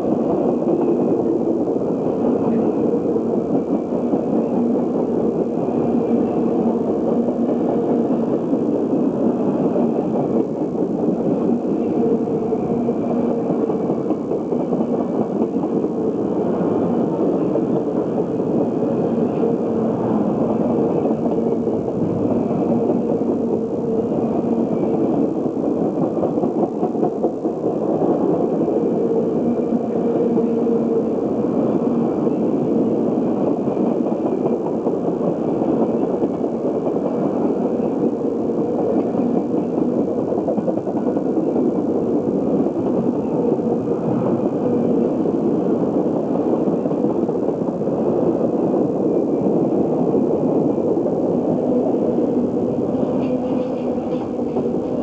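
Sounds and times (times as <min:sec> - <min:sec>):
train cars rolling on rails: 0:00.0 - 0:55.0.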